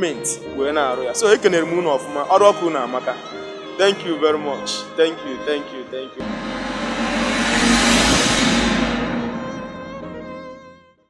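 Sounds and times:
loud whoosh: 0:06.2 - 0:10.7
sustained music tones: 0:06.2 - 0:10.7.

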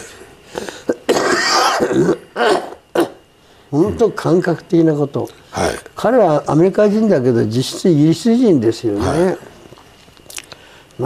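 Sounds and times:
old man raspy throat burst: 0:00.5 - 0:03.2
man speaking syllable: 0:03.7 - 0:09.5.

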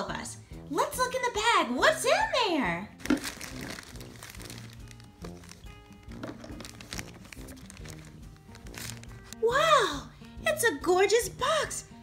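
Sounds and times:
light background music: 0:00.0 - 0:12.0
paper gift bag rustling: 0:03.0 - 0:09.5.

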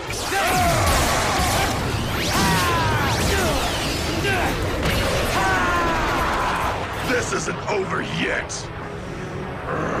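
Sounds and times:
dense loud noise bed: 0:00.0 - 0:10.0
shouts and cries: 0:00.2 - 0:04.6, 0:05.2 - 0:07.0.

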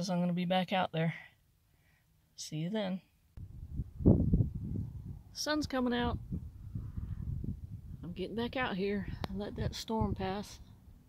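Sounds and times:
wind buffeting microphone: 0:03.4 - 0:10.7.

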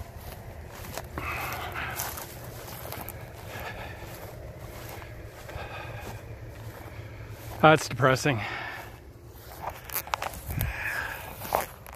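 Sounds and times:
brush rustling against legs: 0:00.0 - 0:11.9
footsteps through dry grass: 0:00.0 - 0:11.9.

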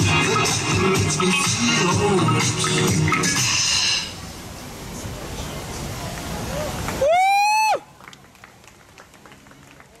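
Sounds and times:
high-pitched whoop: 0:06.5 - 0:07.9
spectators cheering: 0:06.5 - 0:08.1.

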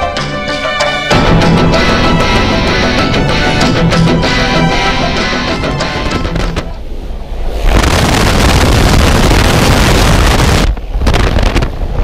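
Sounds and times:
rock music: 0:00.0 - 0:06.7
wind rushing on microphone: 0:06.0 - 0:12.0.

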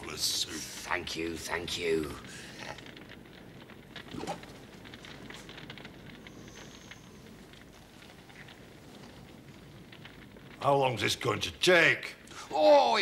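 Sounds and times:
fire crackling: 0:00.0 - 0:13.0.

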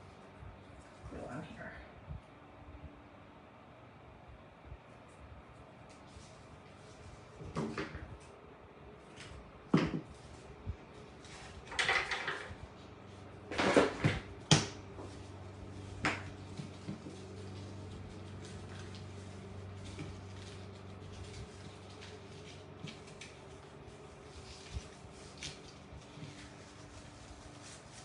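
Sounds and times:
low steady hum: 0:00.0 - 0:28.0
plastic items rustling: 0:10.0 - 0:28.0.

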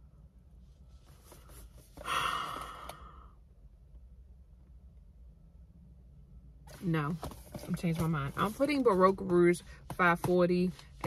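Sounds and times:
woman sighing: 0:02.0 - 0:03.3.

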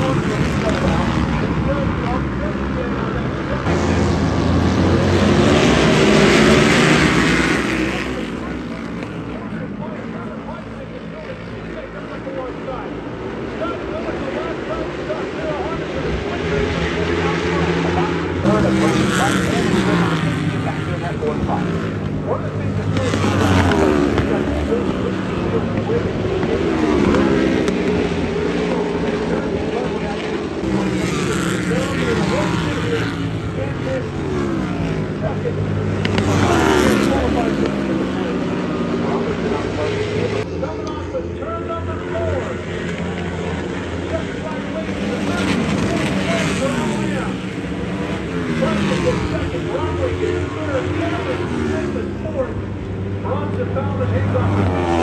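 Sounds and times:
racing motorcycle engines revving: 0:00.0 - 0:55.0.

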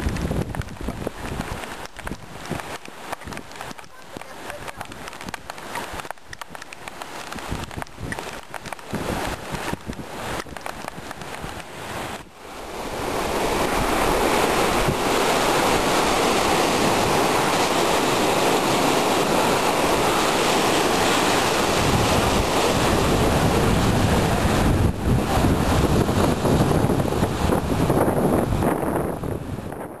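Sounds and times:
sea surf washing onto beach: 0:00.0 - 0:30.0
wind buffeting microphone: 0:00.0 - 0:30.0.

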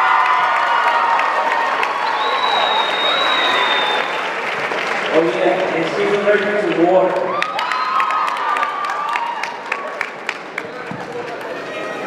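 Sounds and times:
audience applauding and cheering: 0:00.0 - 0:12.0.

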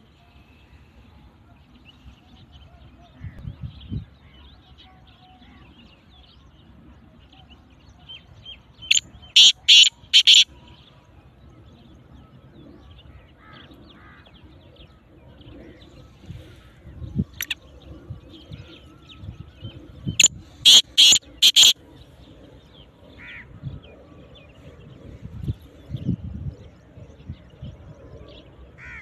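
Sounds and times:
faint bird chirps: 0:08.8 - 0:10.7, 0:15.4 - 0:21.8
francolin calling: 0:08.9 - 0:10.5, 0:20.6 - 0:21.8.

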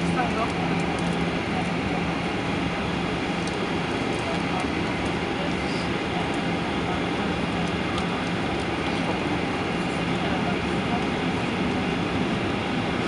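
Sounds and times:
airplane cabin rushing hum: 0:00.0 - 0:13.0
low engine drone: 0:00.0 - 0:13.0.

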